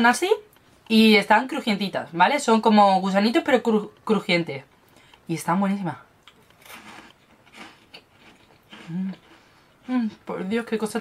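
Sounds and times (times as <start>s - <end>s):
mouth chewing crispy snacks: 6.2s - 9.9s.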